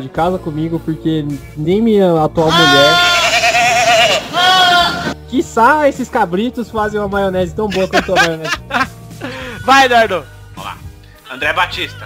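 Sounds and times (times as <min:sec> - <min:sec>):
goat bleating: 0:02.5 - 0:05.0.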